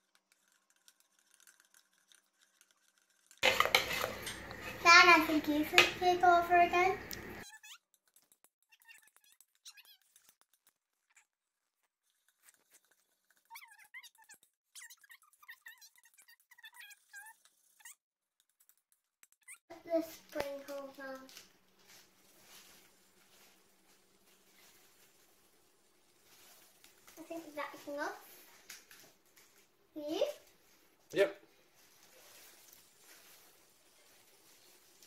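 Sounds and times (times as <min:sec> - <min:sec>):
fork scraping plastic bowl: 0:03.4 - 0:04.8.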